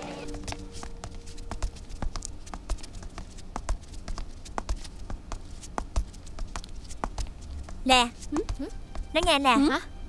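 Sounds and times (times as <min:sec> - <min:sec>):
footsteps on stone stairs: 0:00.2 - 0:09.4
high heels clicking: 0:00.2 - 0:09.5.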